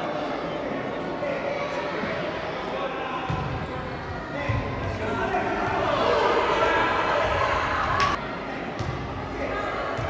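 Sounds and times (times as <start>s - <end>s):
voices calling out in echoing hall: 0.0s - 10.0s.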